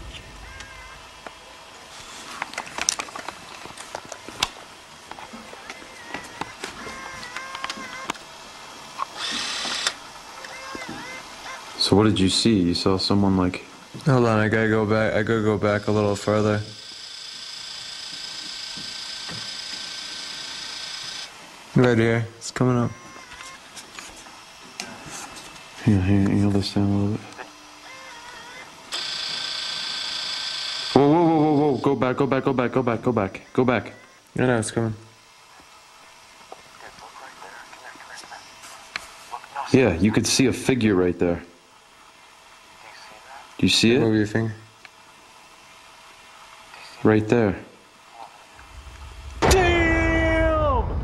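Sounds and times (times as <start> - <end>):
tape rewinding whine: 0.0 - 13.6, 14.2 - 24.7, 25.8 - 38.6, 48.4 - 49.5
camcorder clicks: 6.1 - 8.2, 9.0 - 10.9.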